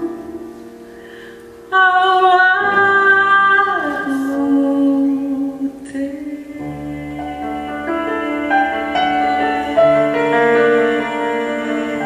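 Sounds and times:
piano: 0.0 - 12.0
woman singing long notes: 1.7 - 12.0.

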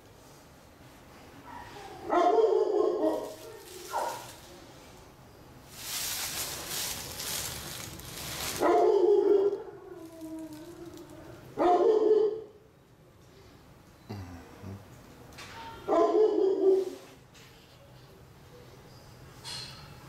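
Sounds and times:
dog barking: 1.4 - 4.4, 8.5 - 9.8, 11.6 - 12.6, 15.6 - 17.0
rustling noise: 3.0 - 11.4.

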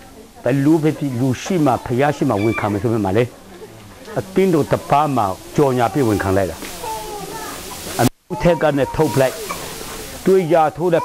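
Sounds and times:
man speaking: 0.4 - 3.3, 4.1 - 6.6, 8.0 - 9.5, 10.2 - 11.0.

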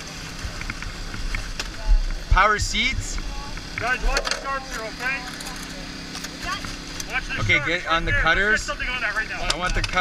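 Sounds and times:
steady low engine hum: 0.0 - 10.0.

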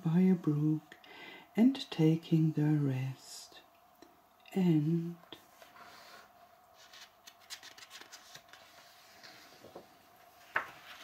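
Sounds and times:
paper page rustling and crackling: 6.8 - 11.0.

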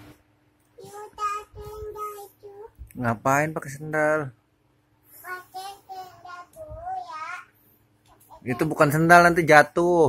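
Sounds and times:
toddler singing: 0.8 - 2.8, 5.2 - 7.5, 8.1 - 8.9.

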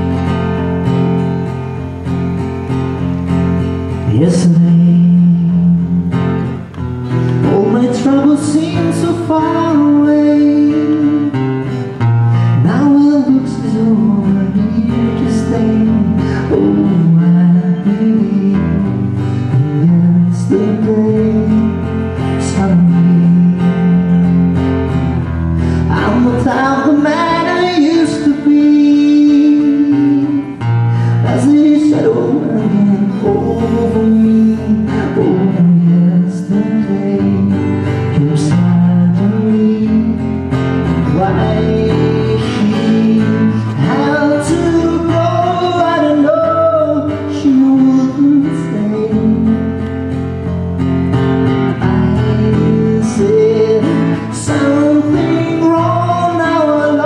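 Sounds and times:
strummed acoustic guitar: 0.0 - 57.0
man singing: 3.5 - 24.6, 25.6 - 57.0.

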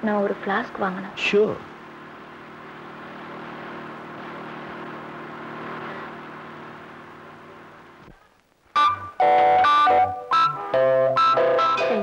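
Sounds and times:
car engine running: 0.0 - 8.1
road noise: 0.0 - 12.0
music: 8.8 - 12.0.

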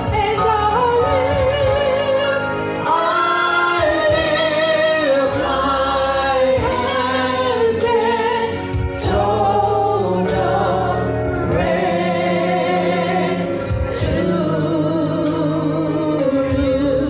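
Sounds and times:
man and woman singing gospel: 0.0 - 17.0.

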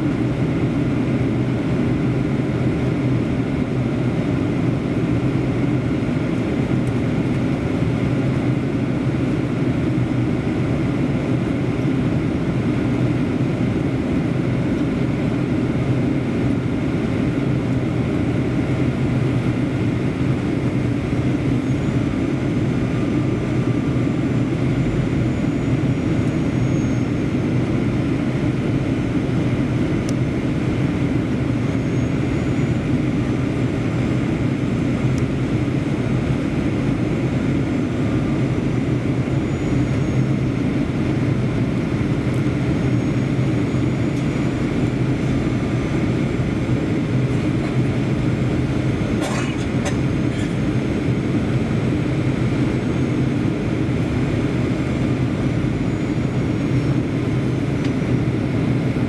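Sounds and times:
jet engines droning: 0.0 - 59.0.

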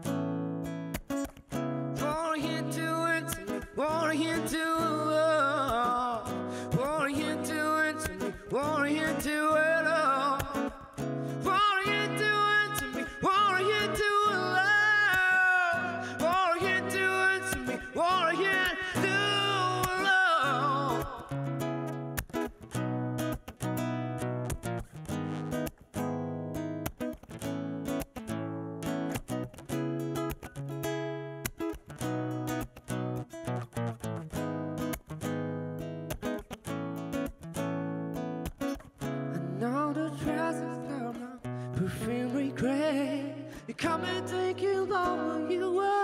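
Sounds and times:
nylon-string acoustic guitar: 0.0 - 46.0
plucked string instrument: 0.0 - 46.0
man singing: 1.9 - 21.7, 39.3 - 46.0.

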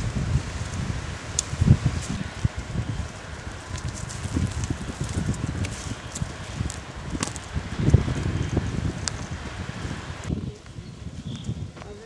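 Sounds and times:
sharp crackles and clicks: 0.0 - 9.4
steady hiss: 0.0 - 11.6
wind buffeting microphone: 0.0 - 12.0.

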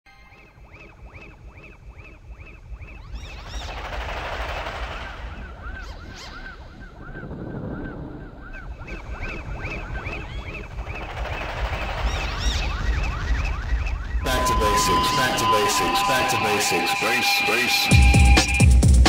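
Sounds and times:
noise swell: 0.1 - 18.7
synth zaps: 0.2 - 7.0, 8.4 - 18.1
deep bass pulse: 17.9 - 19.0.

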